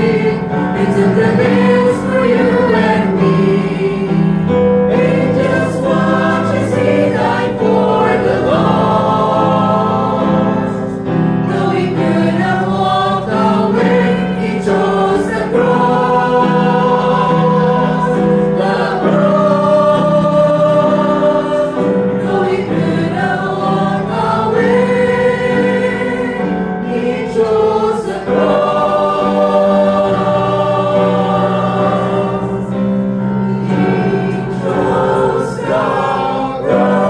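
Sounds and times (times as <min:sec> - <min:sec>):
choir singing a hymn: 0:00.0 - 0:37.0.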